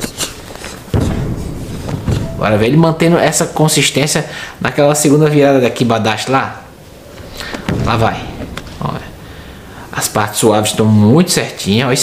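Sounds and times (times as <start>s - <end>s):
foot stamping on mat: 0.6s - 2.3s.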